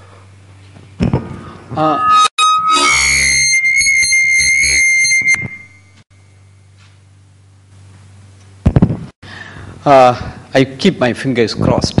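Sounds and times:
microphone feedback squeal: 1.7 - 6.6.

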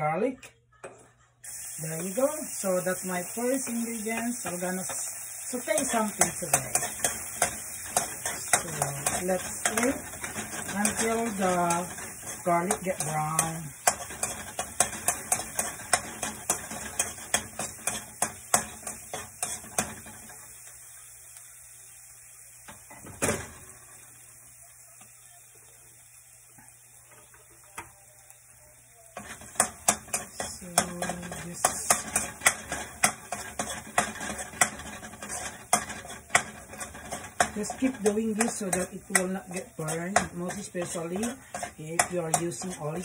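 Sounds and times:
faint oil sizzle: 1.4 - 43.0
metal spoon scraping a wok: 2.0 - 20.5, 29.2 - 43.0.

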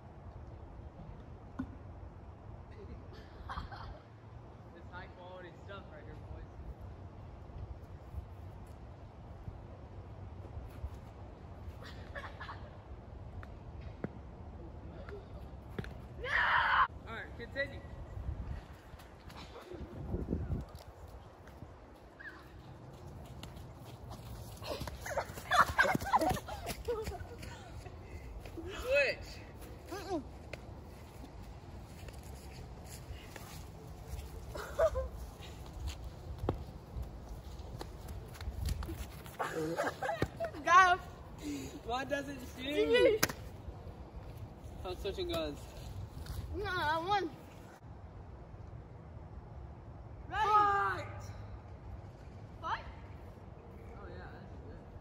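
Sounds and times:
children shouting and laughing: 16.2 - 16.9, 24.5 - 28.9, 34.1 - 35.7
wind buffeting microphone: 17.9 - 22.0.

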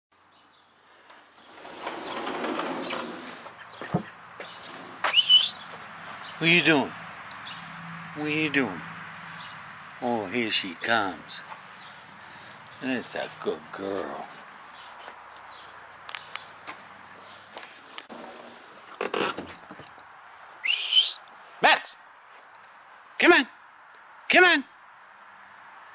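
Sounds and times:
sliding screen door rolling open: 1.0 - 5.1, 18.0 - 19.9
light knocks and scrapes: 1.1 - 5.8, 16.7 - 20.0
person whistling: 5.1 - 5.6, 20.6 - 21.2.

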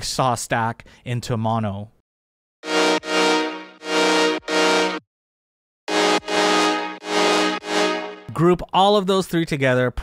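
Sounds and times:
sawtooth synth chords: 2.6 - 5.0, 5.9 - 8.4.

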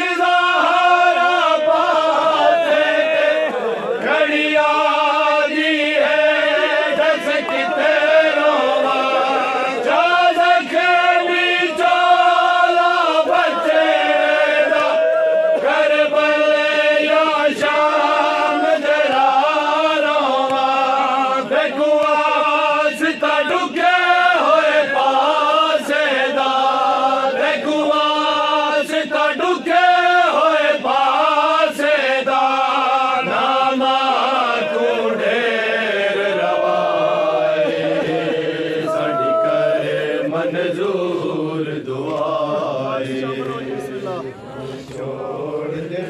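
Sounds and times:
men chanting in unison: 0.0 - 46.0.

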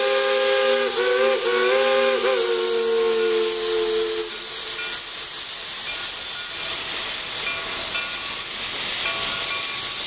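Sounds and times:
steam locomotives hissing: 0.0 - 10.0.

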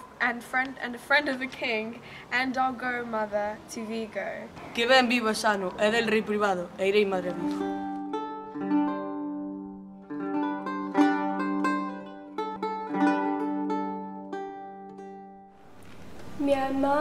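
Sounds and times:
plucked string instrument: 7.0 - 15.6.

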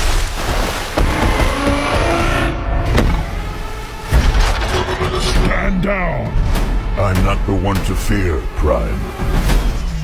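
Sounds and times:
mechanical rumble and whirring: 1.0 - 10.0.

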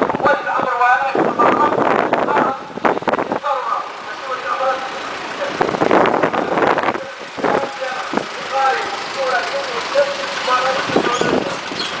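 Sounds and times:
vehicles driving past: 0.0 - 12.0.

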